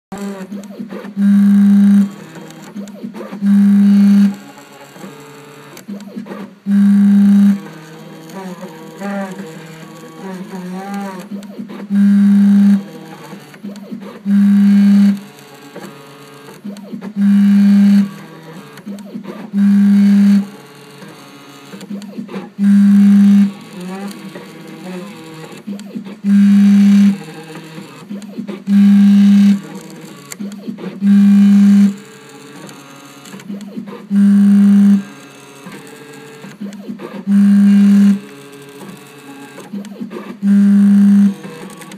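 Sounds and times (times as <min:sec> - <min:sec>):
engraving machine motor buzz: 0:00.1 - 0:05.8, 0:06.7 - 0:36.6, 0:37.2 - 0:41.9.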